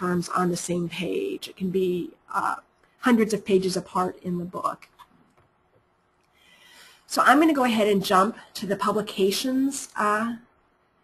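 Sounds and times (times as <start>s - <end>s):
person speaking: 0.0s - 5.7s, 7.1s - 10.6s
faint intake of breath: 6.3s - 7.1s.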